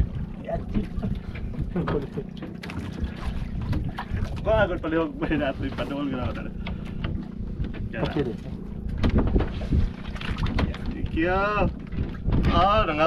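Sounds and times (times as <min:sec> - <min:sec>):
steady low hum: 0:00.0 - 0:13.0
wind rumbling on microphone: 0:00.0 - 0:13.0.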